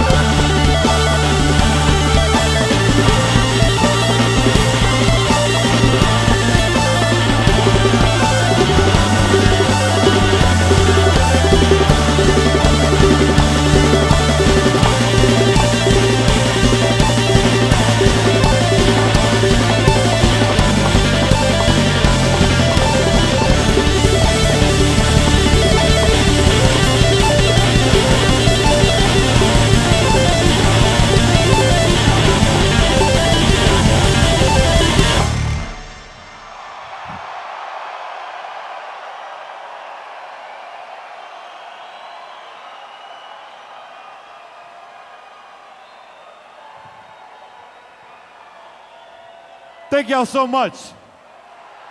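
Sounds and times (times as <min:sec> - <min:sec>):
live electronic rock band: 0:00.0 - 0:36.4
crowd cheering and applauding: 0:00.0 - 0:51.9.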